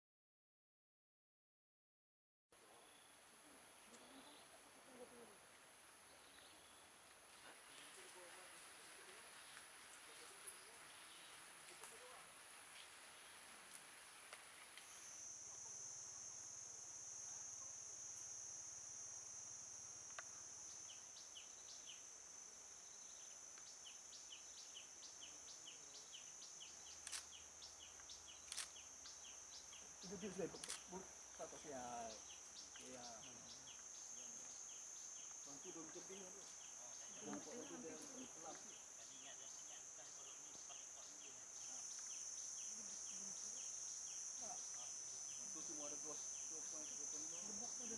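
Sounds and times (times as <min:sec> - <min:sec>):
high-pitched insect drone: 0:14.7 - 0:47.9.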